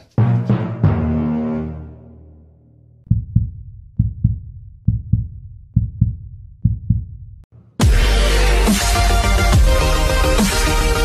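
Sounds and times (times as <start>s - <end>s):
heartbeat thumps: 3.1s - 7.5s.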